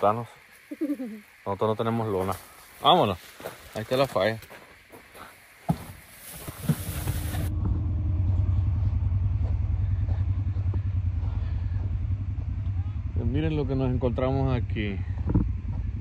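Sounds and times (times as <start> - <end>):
engine low rumble: 6.6 - 16.0.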